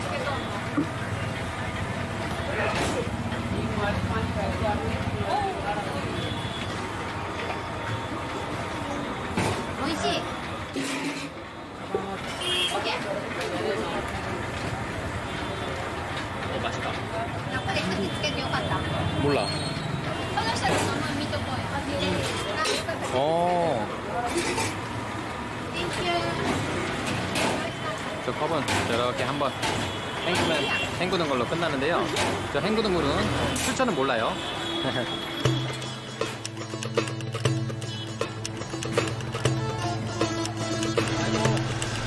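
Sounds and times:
traffic noise: 0.0s - 42.0s
people talking: 25.7s - 35.2s.

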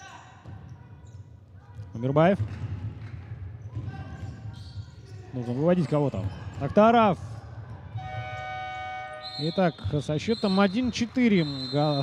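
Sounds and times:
electronic horn tone: 8.0s - 9.8s.

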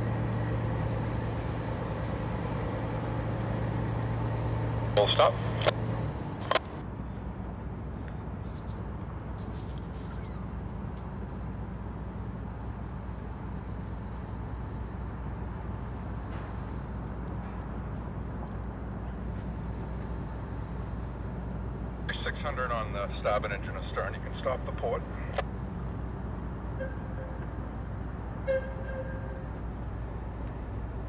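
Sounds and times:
low engine rumble: 0.0s - 31.0s.

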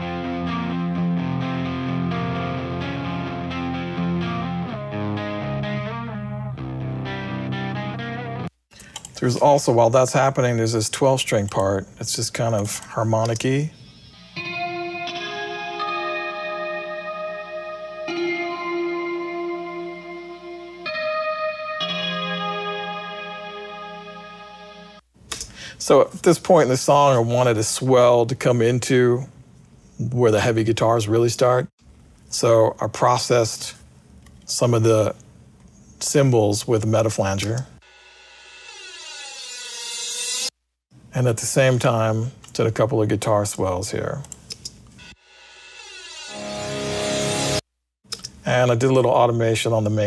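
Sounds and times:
clean electric guitar chords: 0.0s - 8.5s, 14.4s - 25.0s
twelve-string guitar: 0.0s - 8.5s, 14.4s - 25.0s
flanged cymbal swell: 37.9s - 40.5s, 45.2s - 47.6s.

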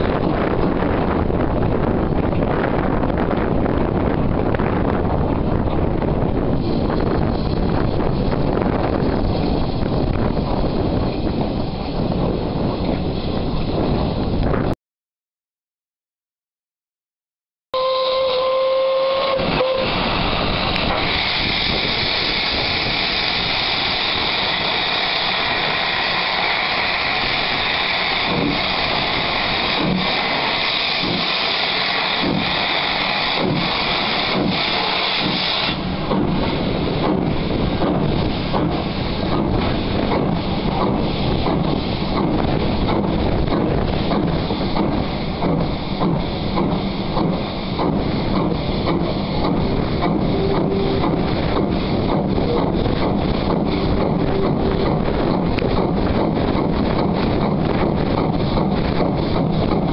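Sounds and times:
steam locomotive exhaust beats: 0.0s - 14.7s, 17.8s - 59.9s
steam hissing: 17.8s - 59.9s.

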